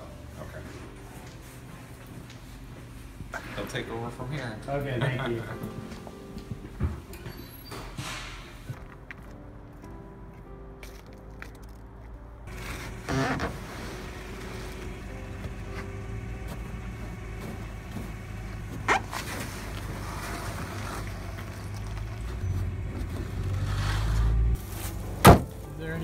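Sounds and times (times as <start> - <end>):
vehicle engine running: 12.5 - 25.2
wooden crate clattering and knocking: 24.7 - 25.7.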